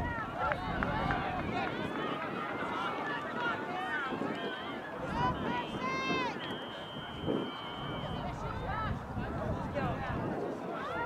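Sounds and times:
voices shouting and calling: 0.0s - 9.0s.

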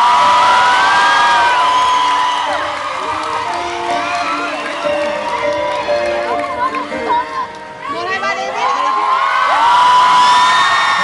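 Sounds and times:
concert crowd cheering and screaming: 0.0s - 11.0s.

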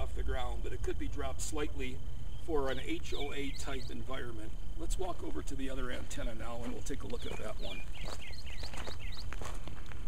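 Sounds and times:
bird chirping: 0.0s - 9.5s
footsteps on gravel: 5.1s - 10.0s.

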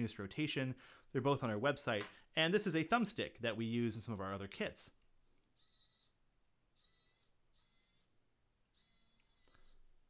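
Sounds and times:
small servo whirring: 5.5s - 9.9s.

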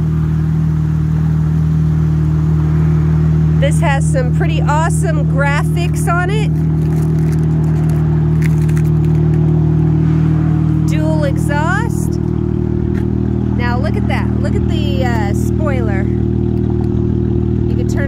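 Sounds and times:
car engine idling: 0.0s - 18.0s.

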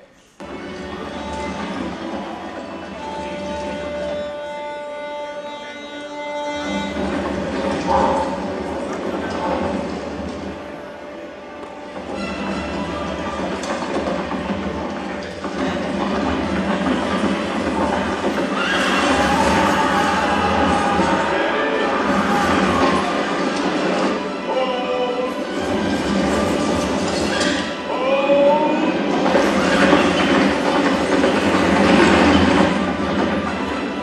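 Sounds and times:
soundtrack music: 0.4s - 34.0s
galloping horses: 6.6s - 10.7s, 12.0s - 24.4s, 29.0s - 34.0s
voices: 12.2s - 34.0s
horses whinnying: 15.2s - 24.3s, 25.6s - 33.4s.

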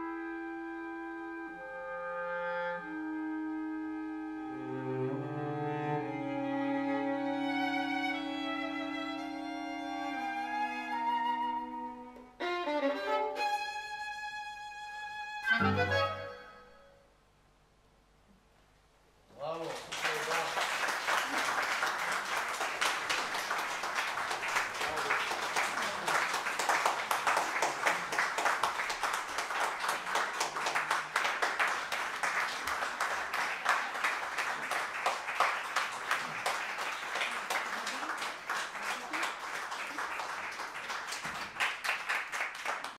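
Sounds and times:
audience applauding: 19.5s - 42.9s.

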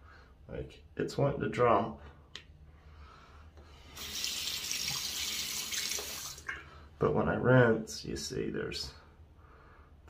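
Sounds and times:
tap water running: 3.9s - 6.6s.

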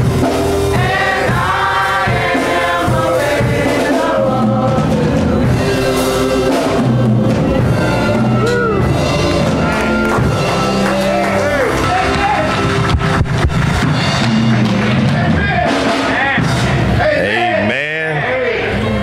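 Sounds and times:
gospel band playing chords: 0.0s - 19.0s.

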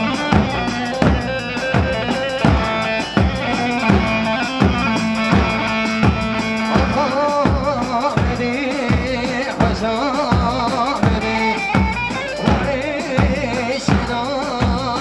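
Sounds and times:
deep drum beat: 0.0s - 15.0s
live dance music: 0.0s - 15.0s.

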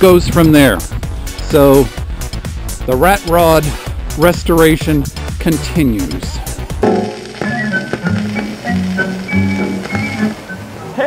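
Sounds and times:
simple instrumental tune: 6.8s - 10.6s.

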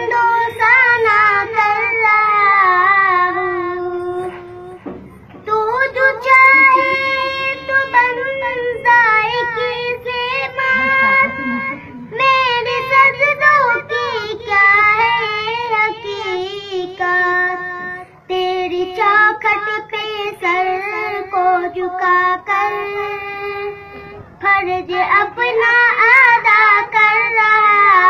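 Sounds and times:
boy singing solo: 5.4s - 28.0s.

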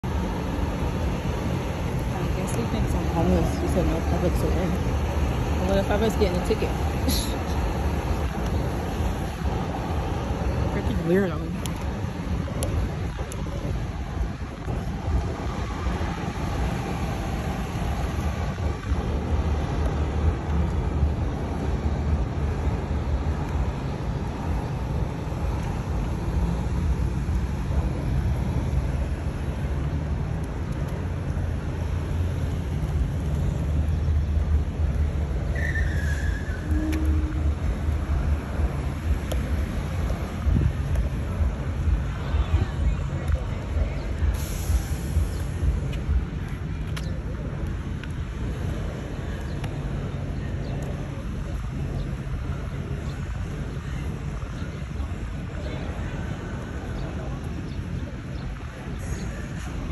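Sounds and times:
low outdoor rumble: 0.0s - 59.9s.

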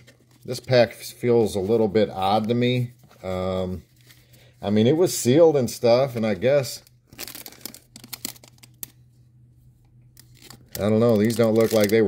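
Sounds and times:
foil wrapper crinkling: 7.0s - 9.0s, 10.2s - 12.0s.

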